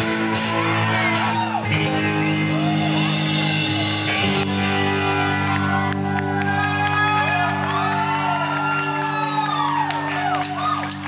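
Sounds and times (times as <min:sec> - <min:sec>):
crowd shouting and whooping: 0:00.0 - 0:11.0
band and orchestra holding a chord: 0:01.5 - 0:07.6.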